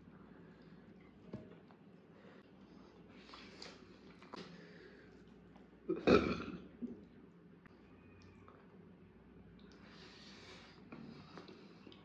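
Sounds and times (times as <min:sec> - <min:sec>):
person burping: 0:05.9 - 0:06.7.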